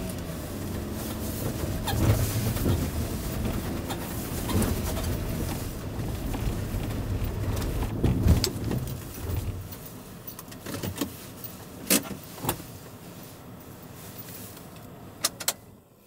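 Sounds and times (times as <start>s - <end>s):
truck engine rumble: 0.0s - 16.0s
clicks and knocks in cab: 1.5s - 9.8s.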